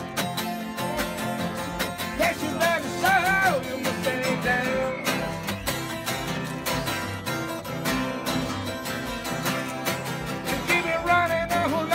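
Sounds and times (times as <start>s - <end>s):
acoustic guitars strumming blues: 0.0s - 11.9s.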